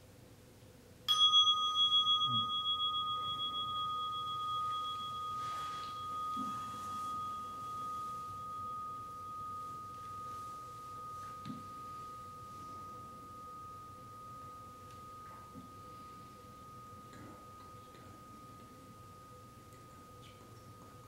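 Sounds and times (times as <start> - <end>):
meditation bell ringing: 1.1 - 21.0.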